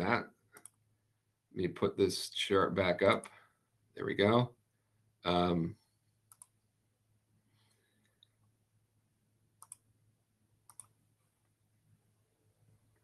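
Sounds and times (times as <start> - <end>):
computer mouse clicks: 0.5 - 0.8, 6.3 - 6.6, 9.6 - 9.9, 10.6 - 11.0.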